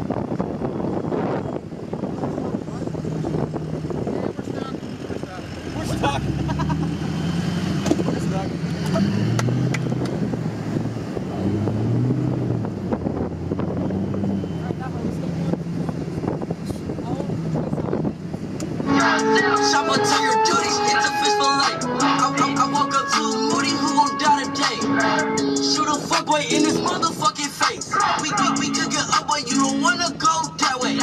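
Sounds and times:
truck engine and tyre noise: 0.0s - 31.0s
people's voices outside: 1.2s - 31.0s.

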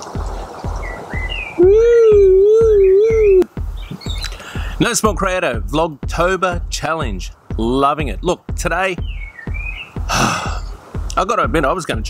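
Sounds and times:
background music with low beat: 0.0s - 12.0s.

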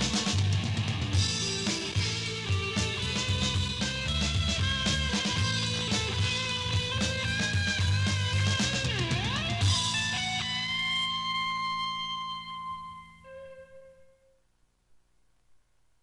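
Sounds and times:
drums: 0.0s - 12.8s
bass guitar: 0.0s - 13.8s
electric guitar chord ringing: 0.0s - 14.3s.

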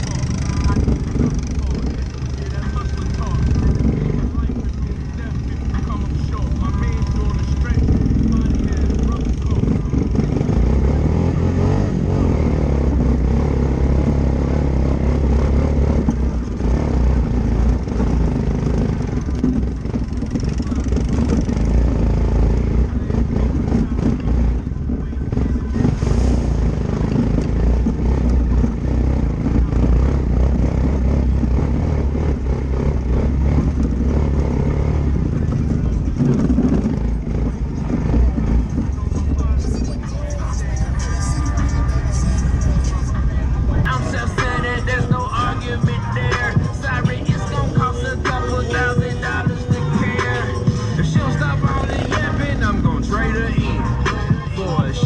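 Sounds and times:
quad bike engine running: 0.0s - 55.0s.

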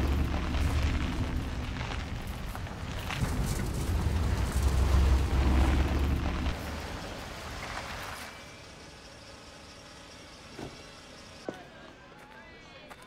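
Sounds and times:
car driving rumble: 0.0s - 8.3s.

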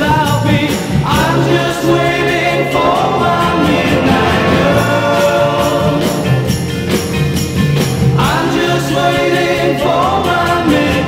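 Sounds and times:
pop song with singing: 0.0s - 6.9s, 8.0s - 11.0s
jingling percussion: 0.0s - 11.0s
band with steady beat: 2.7s - 8.3s.

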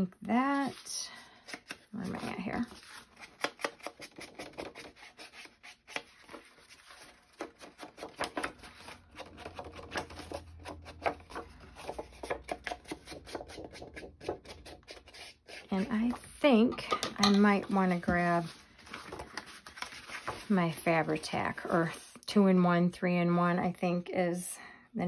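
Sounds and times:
paper rustling: 17.6s - 22.0s.

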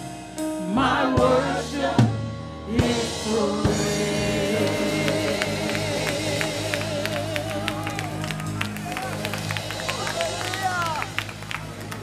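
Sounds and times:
held instrumental chords: 0.0s - 12.0s
person singing with vibrato: 0.6s - 8.2s
congregation clapping: 4.6s - 12.0s
people calling out praise: 5.1s - 11.3s.

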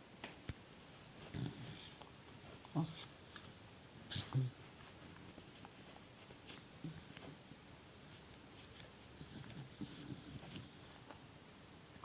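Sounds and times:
dog grunting: 1.3s - 2.0s, 2.7s - 3.1s, 4.1s - 4.6s.

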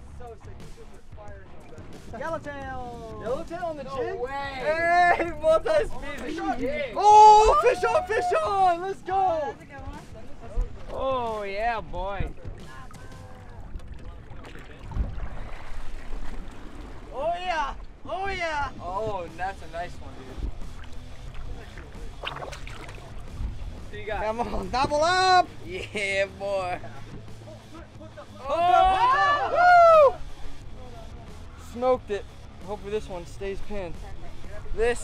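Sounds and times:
water sloshing against boat: 0.0s - 29.1s
people whooping and shouting: 6.9s - 9.1s, 28.4s - 30.3s
wind rumbling on microphone: 9.7s - 25.2s.

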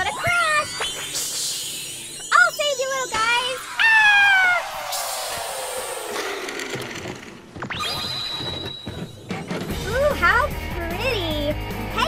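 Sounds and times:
whistle sweeping up: 7.7s - 9.3s.

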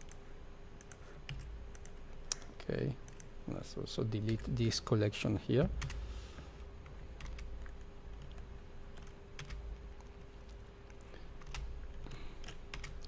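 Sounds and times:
faint steady hum: 0.0s - 13.0s
keyboard and mouse clicks: 0.8s - 3.3s.

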